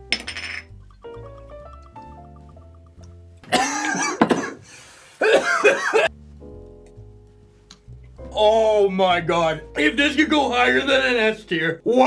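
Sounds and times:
soft background music: 0.0s - 4.6s, 5.2s - 12.0s
man clearing throat: 3.5s - 4.6s, 5.2s - 6.1s.

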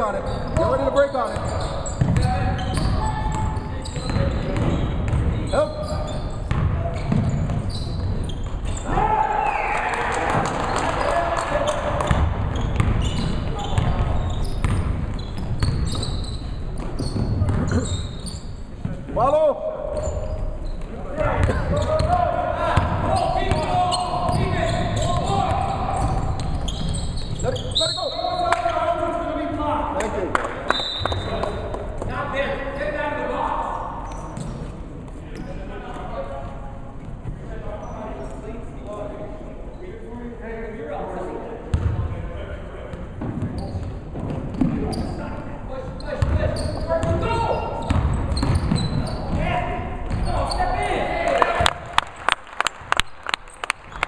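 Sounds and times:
basketball bouncing on hardwood floor: 1.4s - 5.4s, 6.5s - 7.6s, 12.0s - 16.1s, 46.2s - 46.4s, 47.8s - 49.1s
people shouting in a gymnasium: 8.7s - 12.3s, 21.0s - 28.9s, 46.9s - 51.7s.

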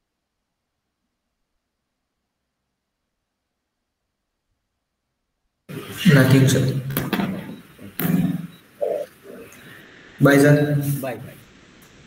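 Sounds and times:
person's voice over video call: 5.7s - 11.4s.

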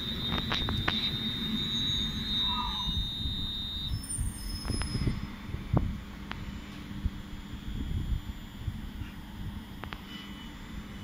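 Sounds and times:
high-pitched train squeal: 0.0s - 5.5s.

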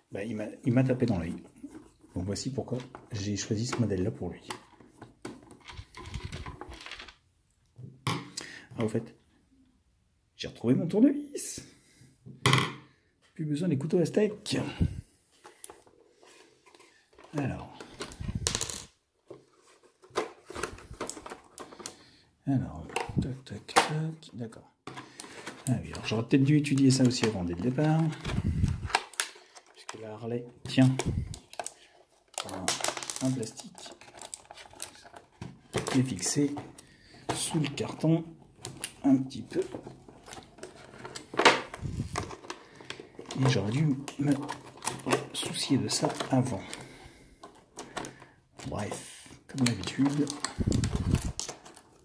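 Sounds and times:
plastic packaging rustling: 4.6s - 7.2s, 14.5s - 23.7s, 24.9s - 52.0s
small clicks and rustles: 30.8s - 36.0s.

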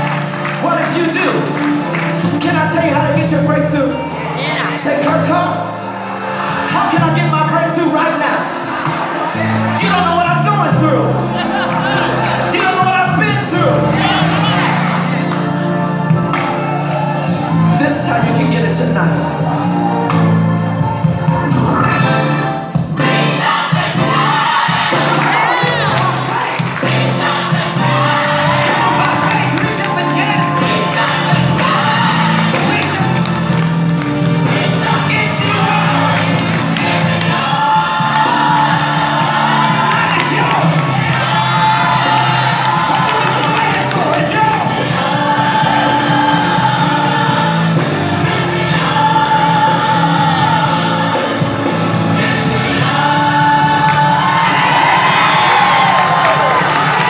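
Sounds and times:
crowd cheering: 0.0s - 2.7s, 7.9s - 18.4s, 19.3s - 50.7s, 53.0s - 57.0s
gospel music playing: 0.0s - 57.0s.

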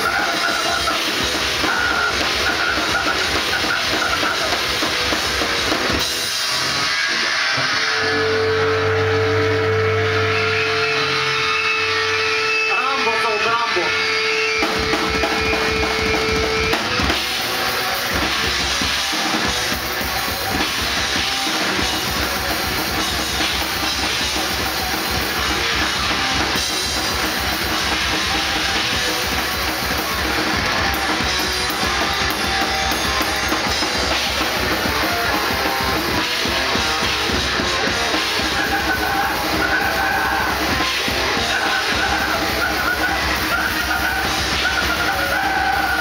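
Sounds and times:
fast drumming on drum kit: 0.0s - 8.1s, 12.7s - 46.0s
distorted guitar: 0.0s - 46.0s.

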